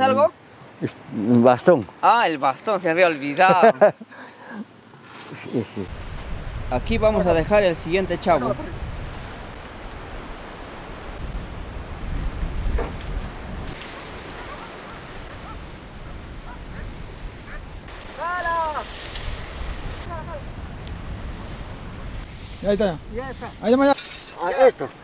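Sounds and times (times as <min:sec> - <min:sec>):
sea surf: 0:02.0 - 0:25.0
wind on microphone: 0:05.9 - 0:23.9.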